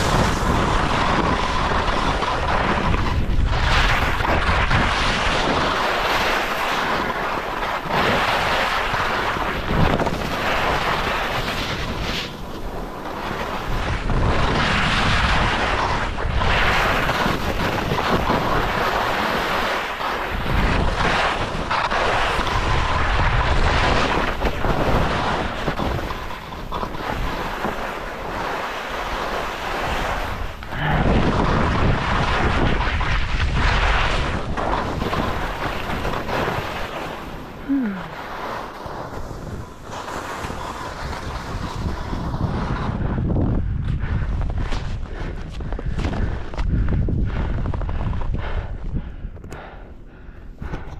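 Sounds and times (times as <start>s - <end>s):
skis scraping on packed snow: 0.0s - 48.7s
wind rushing over microphone: 0.0s - 50.9s.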